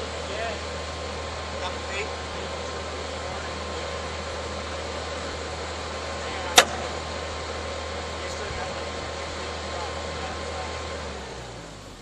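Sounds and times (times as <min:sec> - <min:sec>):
engine running: 0:00.0 - 0:12.0
sharp clank: 0:06.6 - 0:07.3.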